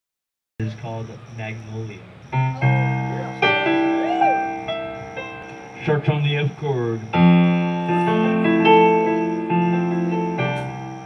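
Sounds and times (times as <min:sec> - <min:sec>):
keyboard chords ringing: 0:02.1 - 0:11.0.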